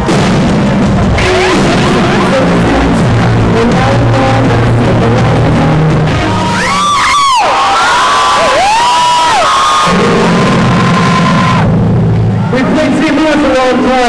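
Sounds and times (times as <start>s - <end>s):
distorted live synth-rock band: 0.0s - 14.0s
high gliding synth tones: 1.1s - 7.0s.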